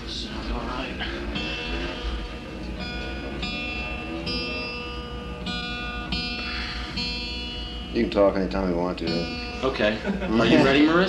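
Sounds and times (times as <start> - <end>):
guitar picked notes and chords: 0.0 - 11.0
steady low hum: 0.0 - 11.0.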